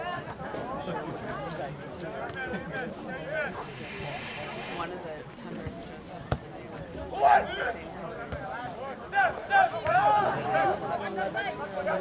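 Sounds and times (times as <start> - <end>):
spectators' voices: 0.0 - 12.0
high hiss: 3.6 - 4.9
soccer ball kick thud: 5.6 - 6.4.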